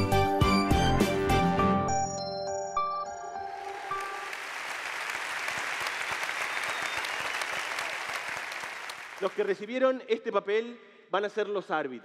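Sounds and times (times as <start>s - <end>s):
large audience applauding: 3.4s - 9.7s.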